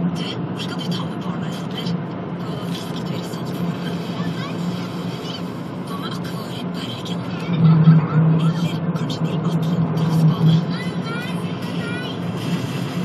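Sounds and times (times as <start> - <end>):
car engine drone inside cabin: 0.0 - 13.0
road noise: 0.0 - 13.0.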